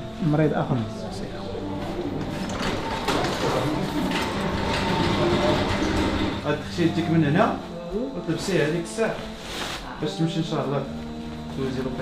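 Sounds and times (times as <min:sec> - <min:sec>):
wheelchair wheels rolling on tiles: 0:00.8 - 0:07.5.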